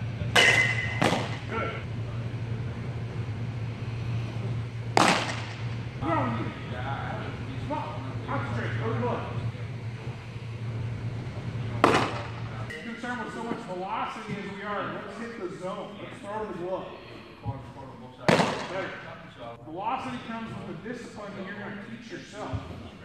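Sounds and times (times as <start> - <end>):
steady low hum: 0.0 - 23.0
baseball smacking into leather mitt: 0.4 - 1.4, 5.0 - 5.6.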